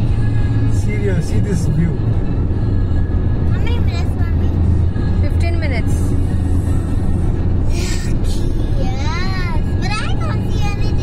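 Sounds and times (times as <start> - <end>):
car driving at highway speed: 0.0 - 11.0.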